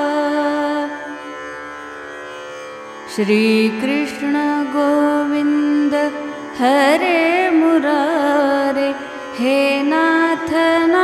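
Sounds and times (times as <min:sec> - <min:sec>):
woman singing: 0:00.0 - 0:01.2, 0:03.1 - 0:11.0
harmonium: 0:01.8 - 0:11.0.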